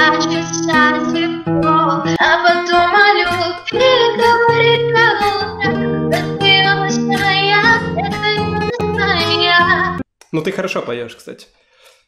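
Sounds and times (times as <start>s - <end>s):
fingerpicked acoustic guitar: 0.0s - 10.0s
woman singing: 0.0s - 10.0s.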